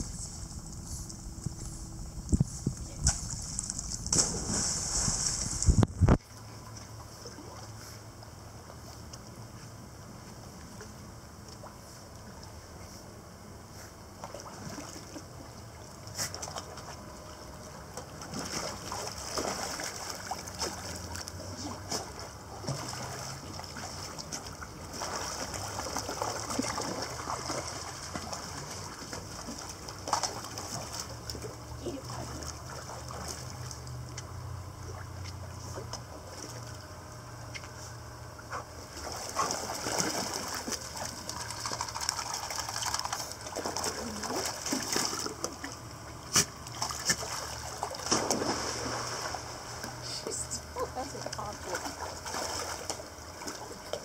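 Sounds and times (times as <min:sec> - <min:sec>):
water splashing and sloshing: 0:00.0 - 0:54.0.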